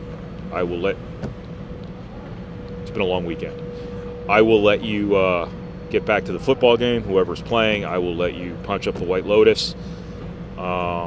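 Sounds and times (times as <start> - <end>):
air handling hum: 0.0 - 11.0.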